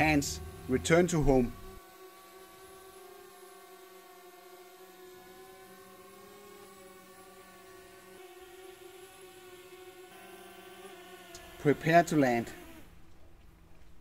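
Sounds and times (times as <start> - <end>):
drone propellers whining: 0.0 - 13.0.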